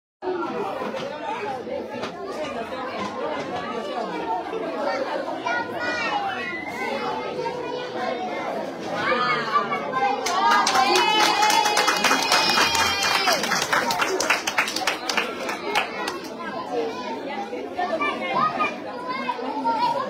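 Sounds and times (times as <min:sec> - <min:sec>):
chatter of many voices: 0:00.2 - 0:20.0
children calling: 0:02.0 - 0:20.0.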